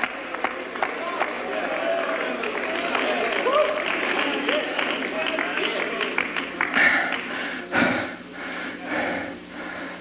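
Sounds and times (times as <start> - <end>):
congregation clapping: 0.0 - 7.6.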